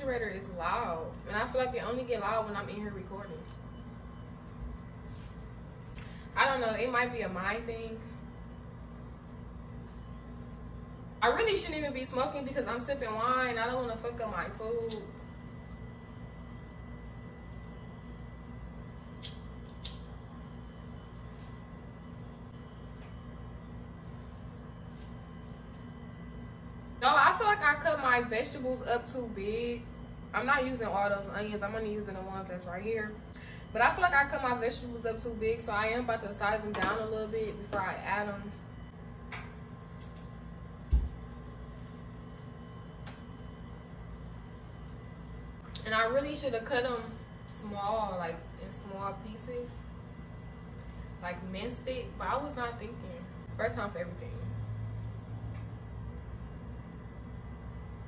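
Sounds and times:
refrigerator hum: 0:00.0 - 0:58.0.

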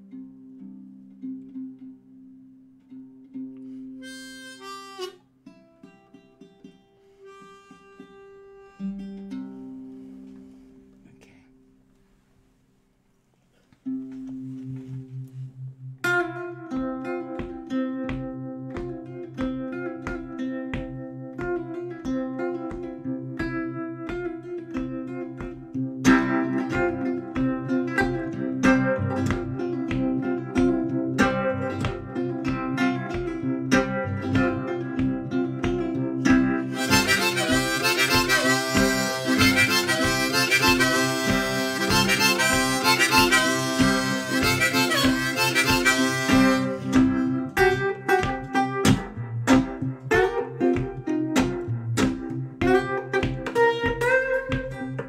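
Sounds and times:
blues guitar riff: 0:00.0 - 0:11.0, 0:13.8 - 0:55.0
harmonica: 0:03.7 - 0:05.7, 0:07.0 - 0:10.7, 0:35.7 - 0:48.8.

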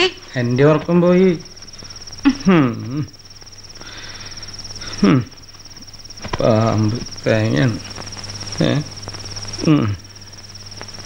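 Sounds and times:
crickets chirring: 0:00.0 - 0:11.0
man speaking: 0:06.4 - 0:07.8.

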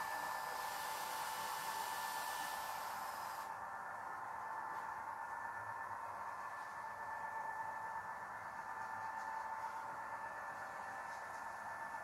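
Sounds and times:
model locomotives humming: 0:00.0 - 0:12.0.

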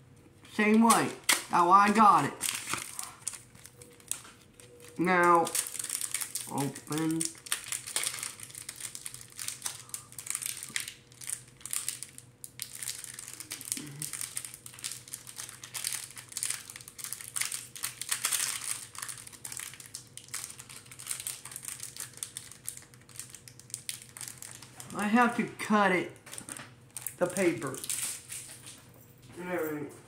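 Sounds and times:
plastic packaging crinkling: 0:00.5 - 0:25.4, 0:26.2 - 0:28.7.

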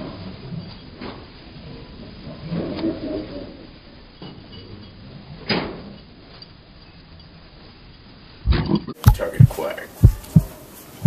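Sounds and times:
heartbeat thumps: 0:08.5 - 0:10.6.

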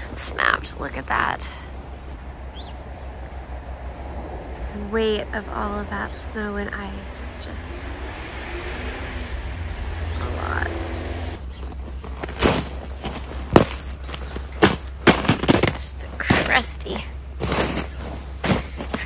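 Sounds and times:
boots crunching on icy snow: 0:11.4 - 0:19.0.

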